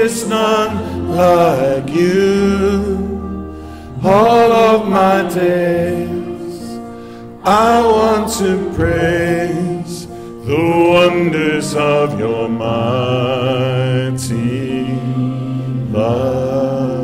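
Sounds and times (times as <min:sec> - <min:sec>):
man singing with vibrato: 0:00.0 - 0:17.0.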